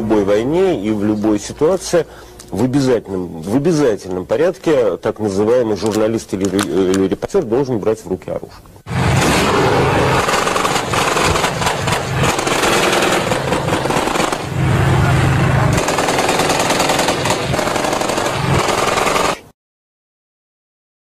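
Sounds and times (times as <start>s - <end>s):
automatic gunfire: 9.1s - 14.6s, 15.7s - 19.4s.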